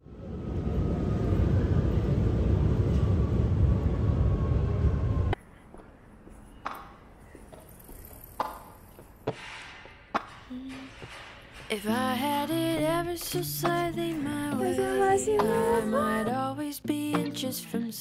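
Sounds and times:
loud steady rumbling with whine: 0:00.0 - 0:05.4
city street ambience: 0:00.0 - 0:18.0.

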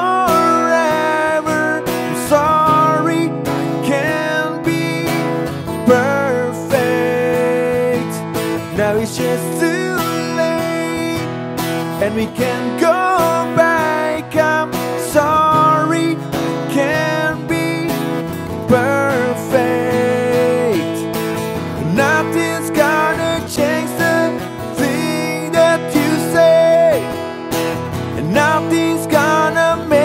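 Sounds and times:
strummed acoustic guitar: 0:00.0 - 0:30.0.

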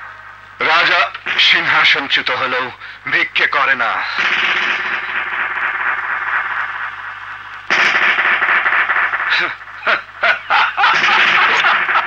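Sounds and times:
steady hiss: 0:00.0 - 0:12.0
man speaking: 0:09.3 - 0:10.0.

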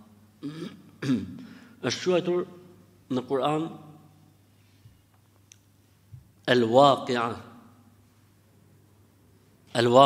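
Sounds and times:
man clearing throat: 0:00.4 - 0:01.5
man speaking: 0:01.2 - 0:04.1, 0:06.4 - 0:07.6, 0:09.7 - 0:10.0.

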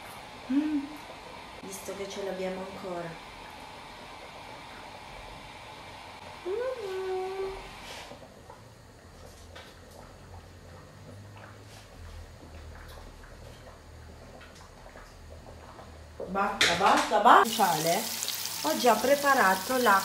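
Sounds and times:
woman humming mmm: 0:00.4 - 0:01.1, 0:06.4 - 0:07.6.

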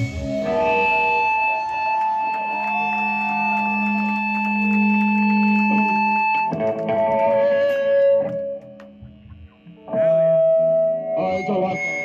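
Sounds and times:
electric guitar and bass drone: 0:00.0 - 0:12.0.

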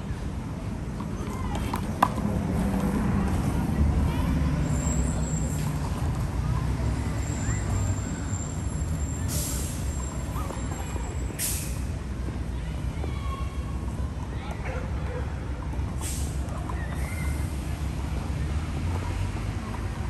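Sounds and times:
heavy vehicle engine rumble: 0:00.0 - 0:20.0.

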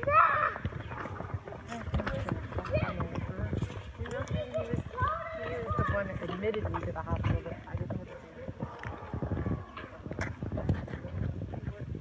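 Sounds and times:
children talking: 0:00.0 - 0:12.0
footsteps on concrete: 0:00.5 - 0:11.8.

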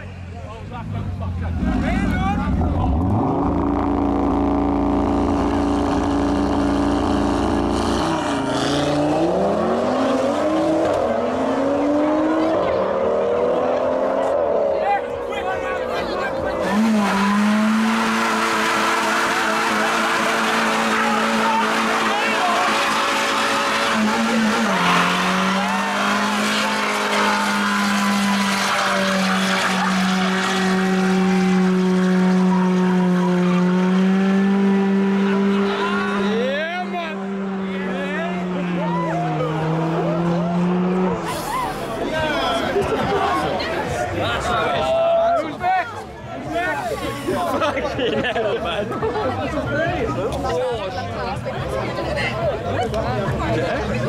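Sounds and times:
car engine revving: 0:00.0 - 0:44.5
engine held at high revs: 0:01.6 - 0:14.9, 0:16.5 - 0:42.6
tyres spinning: 0:16.8 - 0:32.5.

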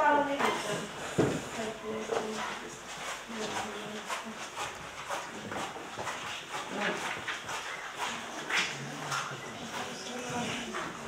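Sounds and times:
people shuffling: 0:00.4 - 0:11.0
low chatter of people: 0:08.4 - 0:11.0.

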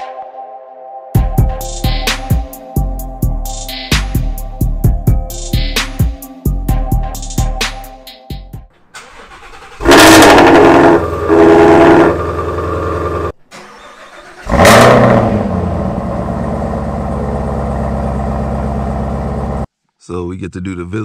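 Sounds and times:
car engine starting and idling: 0:08.7 - 0:19.7.

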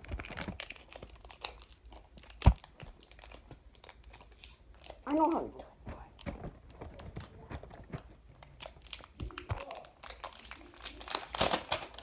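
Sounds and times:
packaging crinkling and rustling: 0:00.0 - 0:12.0.

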